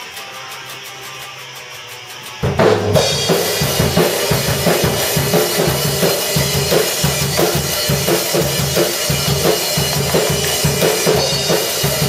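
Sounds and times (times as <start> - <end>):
quiet electric guitar: 0.0 - 12.0.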